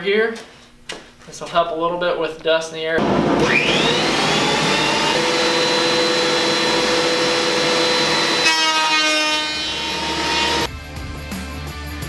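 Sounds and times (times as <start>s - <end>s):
board fed through planer cutter: 3.0s - 10.7s
dust collector running: 3.0s - 10.7s
thickness planer whining: 3.0s - 10.7s
background music: 9.7s - 12.0s.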